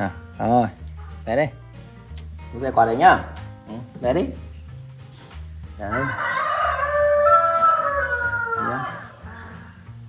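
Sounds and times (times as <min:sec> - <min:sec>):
rooster crowing: 0:05.9 - 0:09.6.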